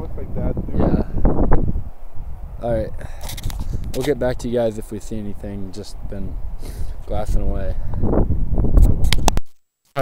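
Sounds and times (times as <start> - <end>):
wind rumble on microphone: 0.0 - 9.5
camera handling noise: 3.2 - 4.2, 8.8 - 9.6.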